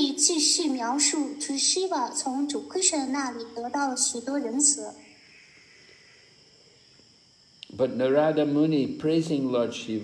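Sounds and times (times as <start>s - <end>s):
crickets trilling: 0.0s - 10.0s.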